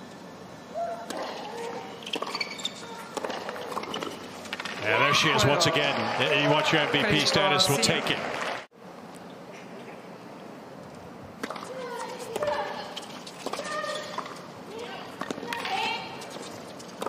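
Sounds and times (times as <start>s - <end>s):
tennis ball bouncing: 1.0s - 5.0s, 11.4s - 14.4s, 15.1s - 17.0s
crowd hum: 2.8s - 8.7s
players shouting: 4.8s - 8.5s.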